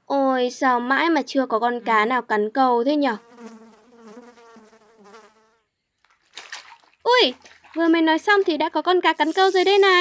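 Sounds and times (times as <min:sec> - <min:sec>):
flies buzzing: 0:03.0 - 0:05.7, 0:09.1 - 0:10.0
short water splash: 0:06.1 - 0:07.9.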